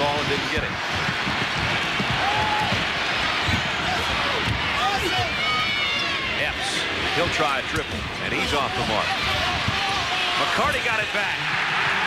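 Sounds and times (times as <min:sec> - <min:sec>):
arena crowd noise: 0:00.0 - 0:12.0.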